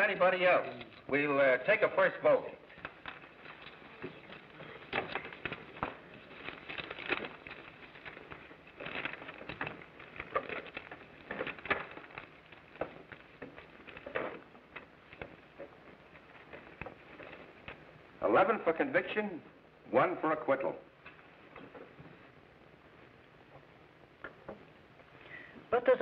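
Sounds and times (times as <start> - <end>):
paper rustling: 2.7 - 18.0.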